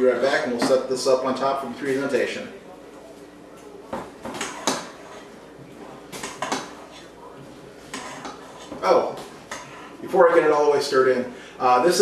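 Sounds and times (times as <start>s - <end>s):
metal spoon scraping steel bowl: 7.9s - 8.8s.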